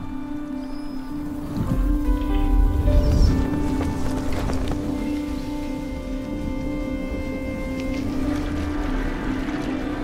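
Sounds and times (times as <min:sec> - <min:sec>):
music with low sustained tones: 0:00.0 - 0:10.0.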